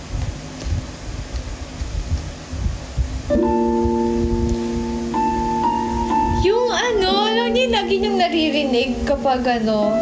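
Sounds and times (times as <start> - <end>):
piano music with slow chords: 3.3 - 10.0
woman's voice: 6.4 - 10.0.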